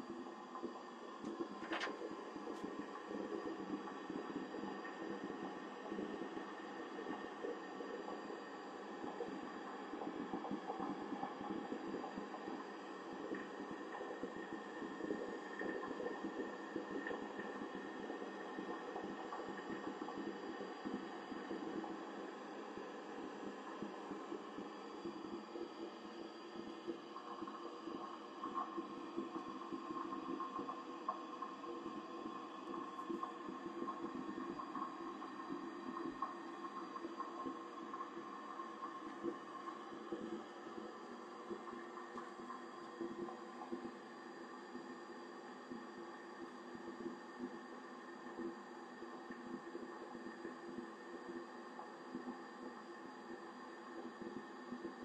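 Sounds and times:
boiler combustion and fan hum: 0:00.0 - 0:55.0.

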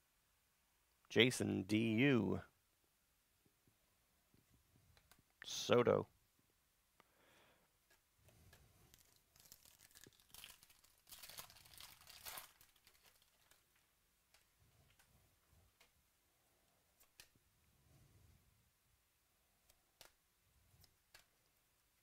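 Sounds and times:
foil wrapper tearing: 0:08.9 - 0:13.6.

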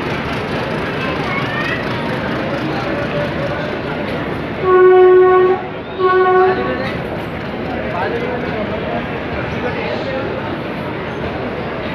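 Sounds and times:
moving train noise: 0:00.0 - 0:11.9
locomotive horn blast: 0:04.6 - 0:07.0.

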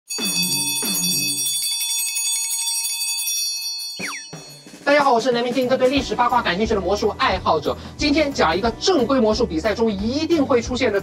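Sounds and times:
hand bell rung rapidly: 0:00.1 - 0:05.1.

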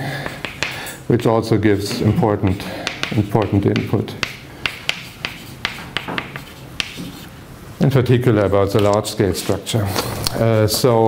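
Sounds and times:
chalk tapping on blackboard: 0:00.2 - 0:00.8, 0:01.9 - 0:07.3.

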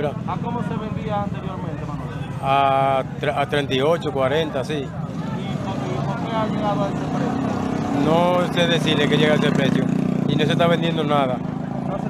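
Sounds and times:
faint voices: 0:00.0 - 0:12.0
motorcycle engines passing: 0:00.0 - 0:12.0.

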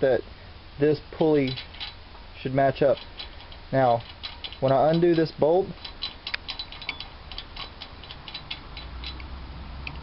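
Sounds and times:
metallic clicks of bolt undoing: 0:01.2 - 0:02.0, 0:02.8 - 0:10.0.

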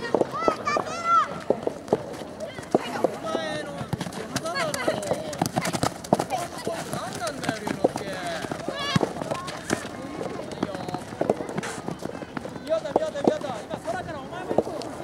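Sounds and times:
running footsteps on dirt: 0:00.0 - 0:15.0
feet kicking ball: 0:01.4 - 0:13.5.

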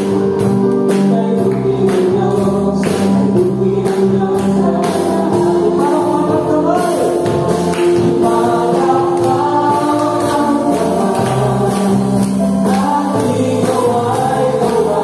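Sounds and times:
band playing worship song: 0:00.0 - 0:15.0
voices singing together: 0:01.0 - 0:15.0.

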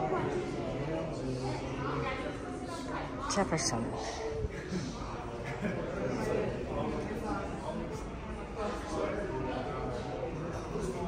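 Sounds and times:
people talking indistinctly: 0:02.4 - 0:10.2.

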